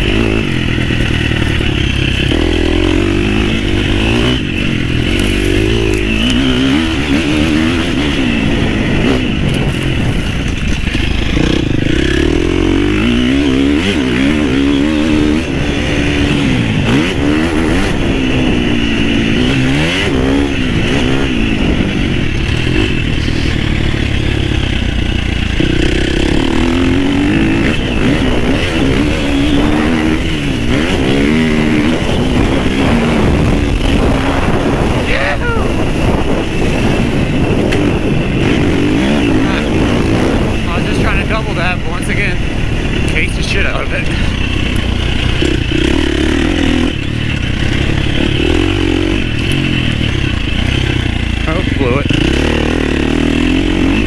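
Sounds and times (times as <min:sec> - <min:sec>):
motorcycle engine revving under load: 0:00.0 - 0:54.0.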